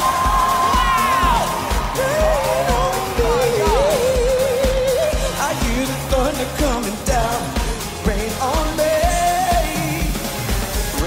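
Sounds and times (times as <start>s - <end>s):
bass drum beat: 0.0s - 11.0s
person singing: 0.0s - 11.0s.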